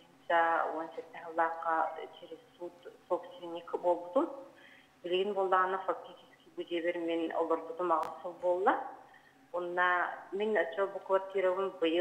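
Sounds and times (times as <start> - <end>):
person speaking: 0.0 - 4.4.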